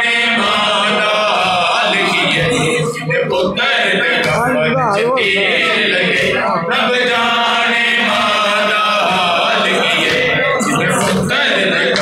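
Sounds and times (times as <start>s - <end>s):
men chanting a lament: 0.0s - 12.0s.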